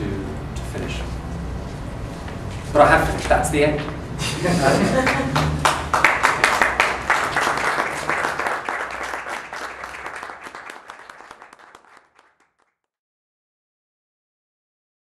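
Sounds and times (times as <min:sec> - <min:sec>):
audience applauding: 0:04.8 - 0:12.8.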